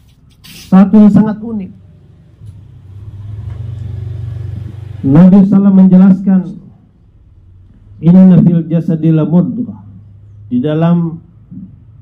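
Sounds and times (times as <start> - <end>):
low engine rumble: 0.2 - 12.0.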